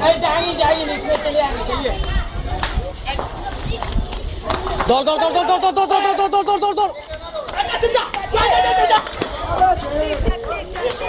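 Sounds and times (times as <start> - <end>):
people shouting: 4.9 - 11.0.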